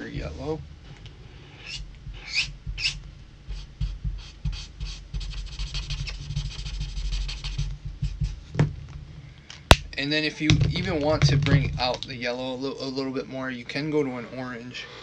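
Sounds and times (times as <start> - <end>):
marker squeaking on paper: 1.5 - 8.5.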